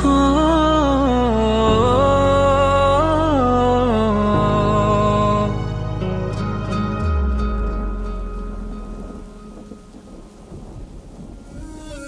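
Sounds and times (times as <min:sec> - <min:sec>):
rain: 0:00.0 - 0:12.0
soft music: 0:00.0 - 0:12.0
low rolling thunder: 0:06.9 - 0:12.0.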